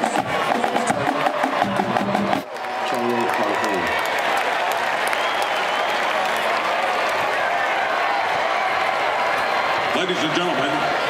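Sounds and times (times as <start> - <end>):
marching band drums: 0.0 - 2.5
stadium crowd murmur: 0.0 - 11.0.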